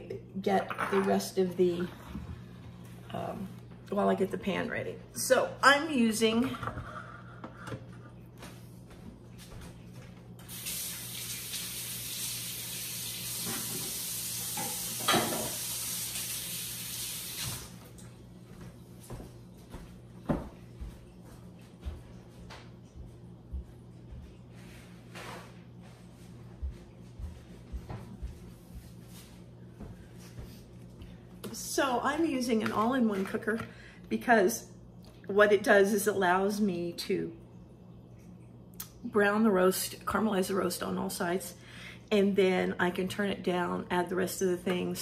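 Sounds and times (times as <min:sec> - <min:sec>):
low steady hum: 0:00.0 - 0:16.3, 0:17.6 - 0:45.0
water running from a tap: 0:10.4 - 0:18.0.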